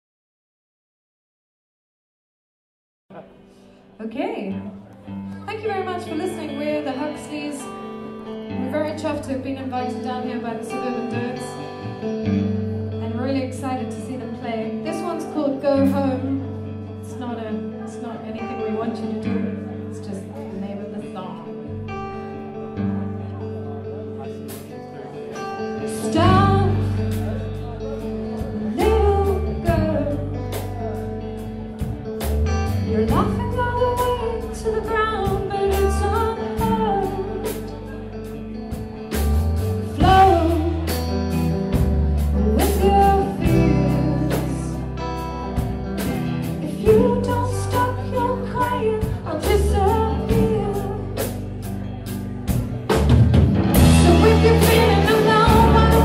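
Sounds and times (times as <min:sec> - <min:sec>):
electric guitar riff: 0:04.5 - 0:56.0
drums: 0:24.3 - 0:56.0
person singing: 0:25.4 - 0:31.6, 0:32.6 - 0:38.2, 0:39.7 - 0:51.4, 0:53.8 - 0:56.0.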